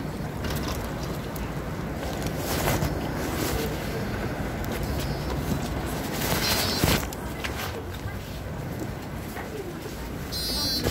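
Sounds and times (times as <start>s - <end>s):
steady low rumble: 0.0s - 6.4s.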